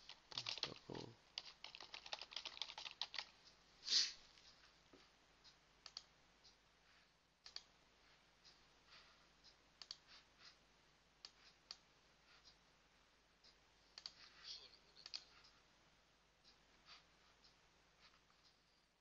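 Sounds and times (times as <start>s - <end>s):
computer mouse clicks: 5.8s - 6.1s, 7.4s - 7.7s, 9.8s - 10.0s, 14.0s - 14.2s.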